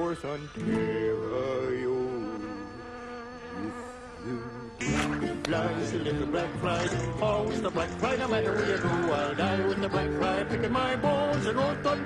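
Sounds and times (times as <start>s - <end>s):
fly buzzing: 1.6s - 12.0s.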